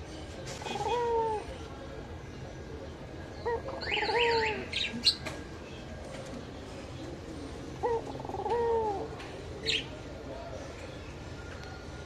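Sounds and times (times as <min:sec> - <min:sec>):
dove cooing: 0:00.6 - 0:01.6, 0:03.4 - 0:04.8, 0:07.7 - 0:09.2.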